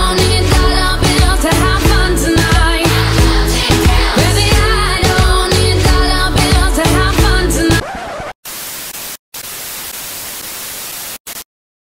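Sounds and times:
static hiss: 8.4s - 11.5s.

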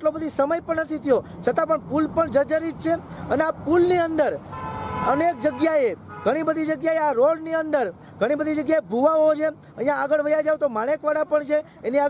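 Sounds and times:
man talking: 0.0s - 12.0s
vehicle horn long note: 4.5s - 5.5s.

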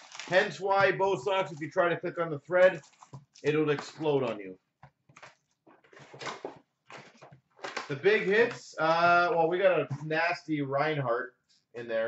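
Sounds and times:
foil wrapper crinkling and tearing: 0.0s - 0.6s.

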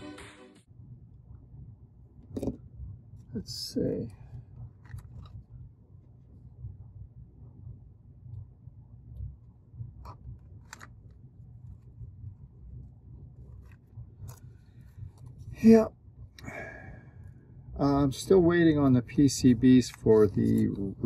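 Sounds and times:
low steady hum: 0.6s - 21.0s.

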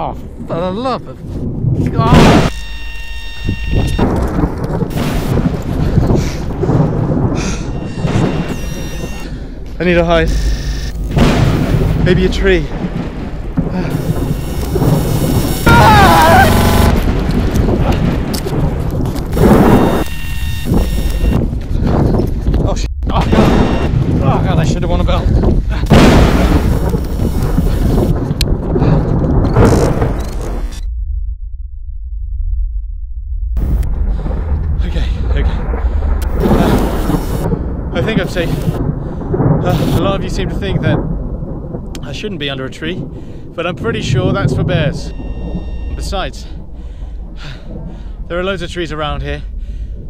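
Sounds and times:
dense storm rush: 0.0s - 50.0s
thunder rumbling: 0.0s - 50.0s
loud thunder crash: 0.3s - 2.8s, 3.4s - 32.8s, 33.6s - 50.0s
warbling distorted glitch tone: 2.0s - 4.3s, 4.9s - 5.5s, 7.5s - 9.2s, 9.9s - 12.3s, 13.9s - 17.3s, 19.3s - 21.5s, 23.0s - 24.6s, 25.9s - 28.2s, 36.2s - 38.8s, 39.6s - 40.1s
rain: 3.5s - 30.8s, 33.6s - 50.0s.

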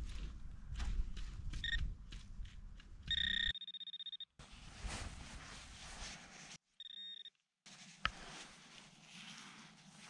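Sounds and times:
metal detector beeping: 1.6s - 1.8s, 3.1s - 4.3s, 6.8s - 7.3s.

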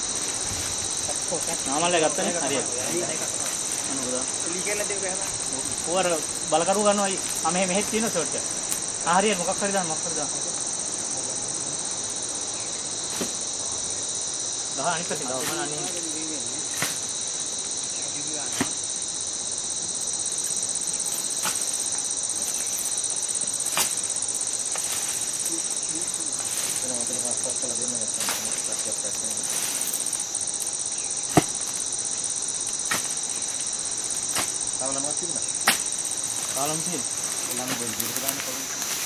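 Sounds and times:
high-pitched insect chorus: 0.0s - 39.0s.

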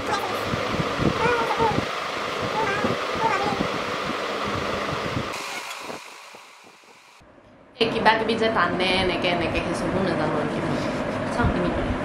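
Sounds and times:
rushing hiss: 5.2s - 7.2s.

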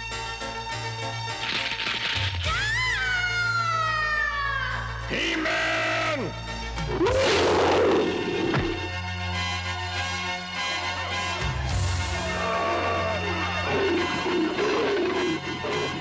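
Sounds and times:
cartoon background music: 0.0s - 16.0s
long pitched cry: 12.2s - 16.0s
loud noisy roar: 12.3s - 16.0s.

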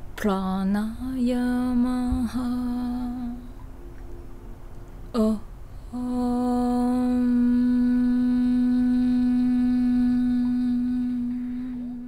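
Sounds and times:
person chanting om: 0.2s - 4.2s, 5.0s - 12.0s.

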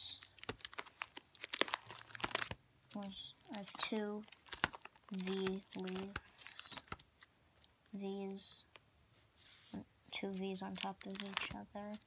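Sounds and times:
plastic binder pages crinkling: 0.0s - 7.3s, 10.1s - 12.0s.

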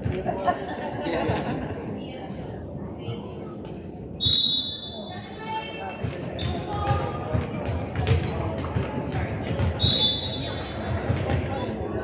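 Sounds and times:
voices echoing in gym: 0.0s - 12.0s.

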